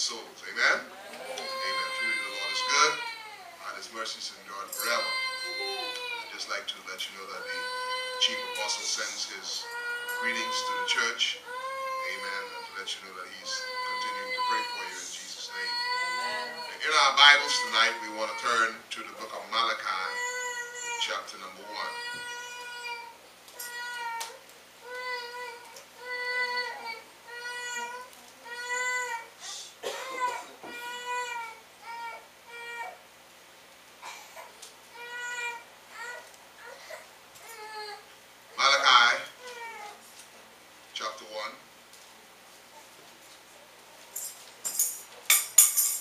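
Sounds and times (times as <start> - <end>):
baby crying: 0.9 - 3.7, 4.7 - 6.4, 7.3 - 18.7, 20.0 - 33.0, 34.0 - 38.1, 39.4 - 40.0.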